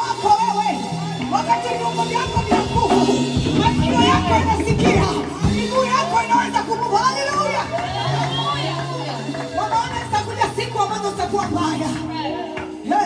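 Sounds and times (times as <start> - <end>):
woman singing through microphone: 1.4 - 8.8.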